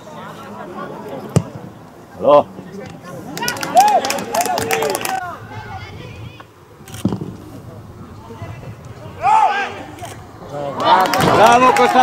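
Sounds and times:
loud shout: 3.4 - 5.9, 9.2 - 9.9.

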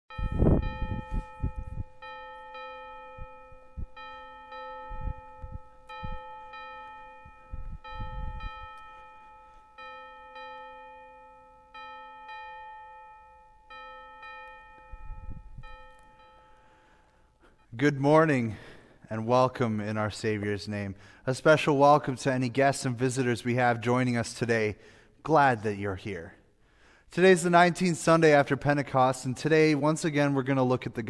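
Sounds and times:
church bell ringing: 0.1 - 17.6.

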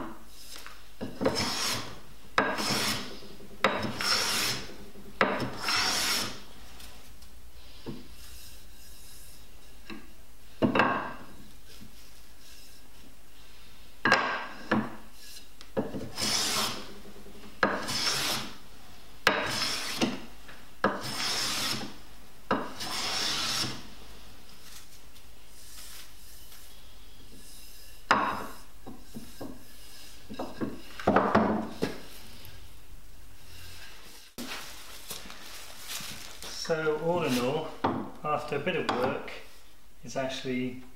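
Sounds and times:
plane shaving wood: 1.1 - 6.4, 15.9 - 17.0, 17.6 - 18.6, 19.3 - 20.2, 20.8 - 22.0, 22.6 - 23.9.

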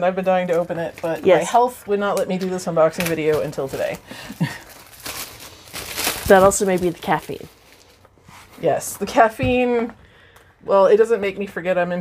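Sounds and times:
plastic wrapping crinkling: 0.2 - 8.8
person laughing: 4.2 - 4.7.

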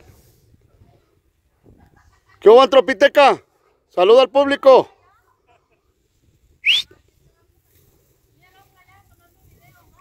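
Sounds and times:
person whistling upward: 6.6 - 6.9.

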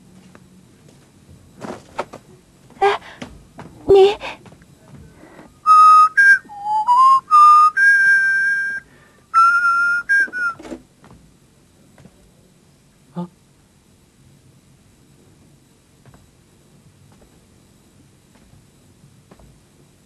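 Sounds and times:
person whistling a tune: 5.6 - 10.7.

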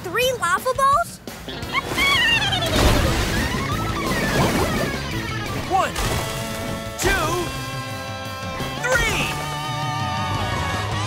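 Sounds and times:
upbeat cartoon music with guitar: 0.1 - 11.0
water splash sound effect: 1.7 - 6.9.

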